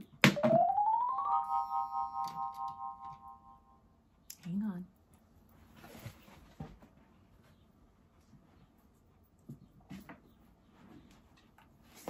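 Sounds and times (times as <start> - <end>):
rising electronic tone and chord: 0.4 - 3.8.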